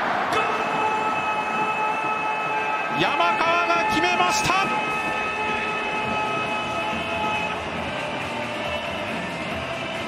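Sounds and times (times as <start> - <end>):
stadium crowd cheering: 0.0 - 10.0
commentator's long goal shout: 0.2 - 7.5.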